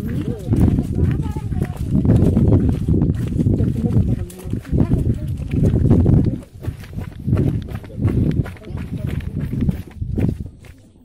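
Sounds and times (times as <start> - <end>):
handling or wind rumble: 0.0 - 10.8
indistinct voices outdoors: 0.0 - 11.0.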